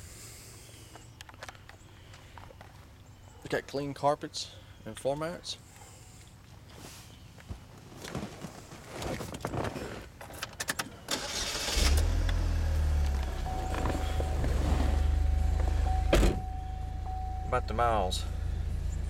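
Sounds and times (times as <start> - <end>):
car engine starting and idling: 11.1 - 19.0
thin steady tone: 13.4 - 19.0.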